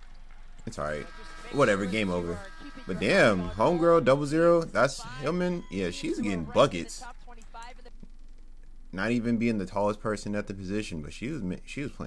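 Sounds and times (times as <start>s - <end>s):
low steady hum: 0.0s - 12.0s
faint voice: 0.7s - 8.0s.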